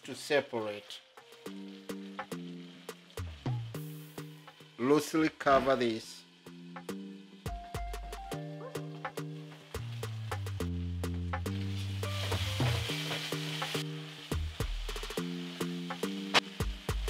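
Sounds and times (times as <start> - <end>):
food sizzling in a pot: 0.0 - 17.0
background music with bass and beat: 1.2 - 4.8, 5.5 - 17.0.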